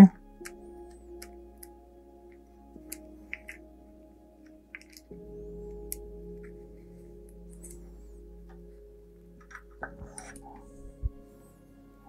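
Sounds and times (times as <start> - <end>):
soft background music: 0.0 - 12.0
light clicks of tool parts: 4.4 - 6.6.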